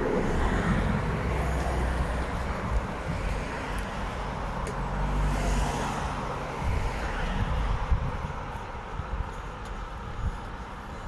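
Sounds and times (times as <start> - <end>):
cars driving past: 0.0 - 11.0.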